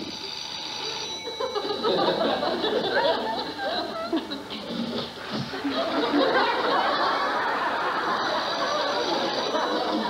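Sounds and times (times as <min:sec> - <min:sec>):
telephone bell ringing: 0:00.3 - 0:02.5
studio audience laughing: 0:01.4 - 0:10.0.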